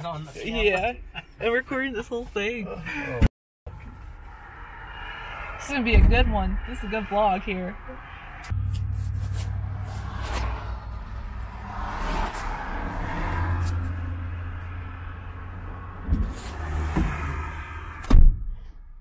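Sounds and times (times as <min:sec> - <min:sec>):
car engine droning in cabin: 0:05.6 - 0:18.2.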